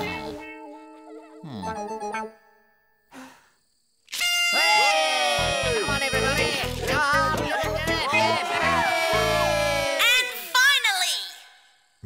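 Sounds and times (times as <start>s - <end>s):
upbeat cartoon music: 0.0s - 2.4s, 4.4s - 10.0s
party blower honking: 4.1s - 6.8s.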